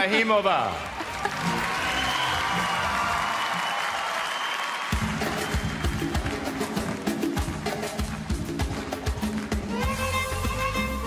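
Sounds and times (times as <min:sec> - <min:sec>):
audience applauding: 0:00.0 - 0:09.7.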